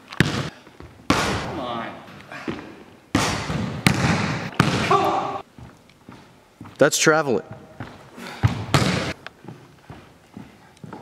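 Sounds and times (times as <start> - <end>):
basketball hits echoing in gym: 0.0 - 10.0.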